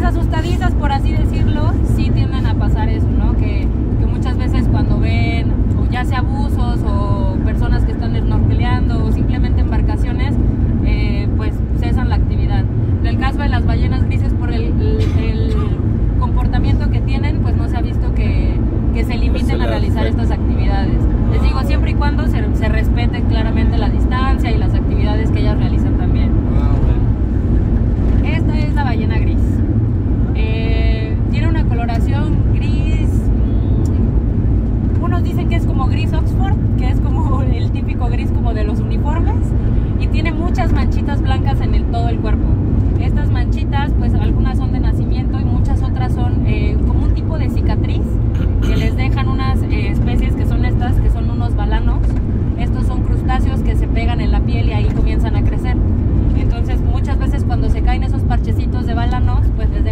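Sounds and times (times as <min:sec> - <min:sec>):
woman talking: 0:00.0 - 0:26.4, 0:28.2 - 0:29.6, 0:30.3 - 0:33.3, 0:35.0 - 0:59.9
van rumble inside cabin: 0:00.0 - 0:59.9.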